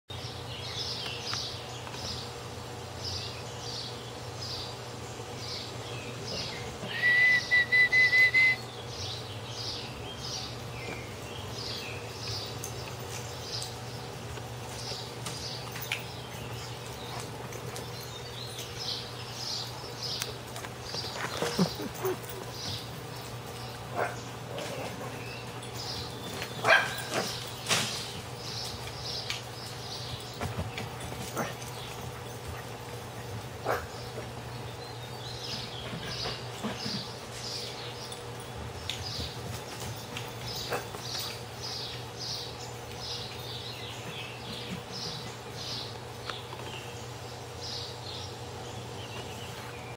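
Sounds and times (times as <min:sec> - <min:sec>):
person whistling: 0:06.9 - 0:08.6
dog barking: 0:24.0 - 0:24.2, 0:26.6 - 0:27.3, 0:33.6 - 0:34.0.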